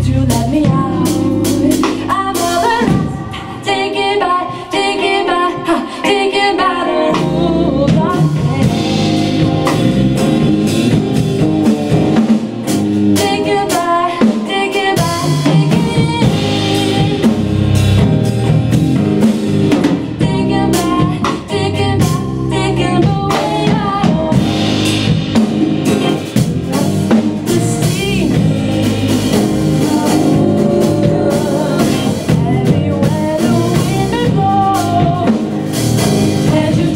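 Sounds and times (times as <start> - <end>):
person singing: 0.0 - 9.8, 13.2 - 17.6, 19.8 - 25.0, 25.8 - 36.9
live band playing: 0.0 - 36.9.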